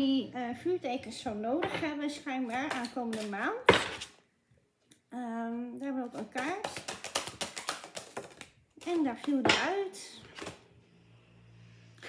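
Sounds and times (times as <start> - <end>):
cards being shuffled: 6.2 - 9.4.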